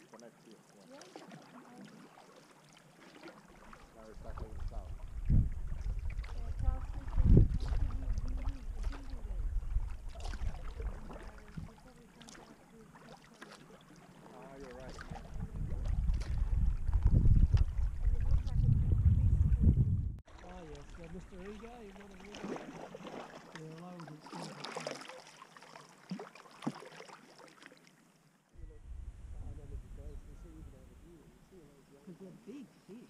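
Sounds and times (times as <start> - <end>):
paddle strokes splashing: 0.0 - 18.6, 20.2 - 28.2
wind rumbling on microphone: 4.1 - 11.9, 14.8 - 21.8, 28.6 - 31.6.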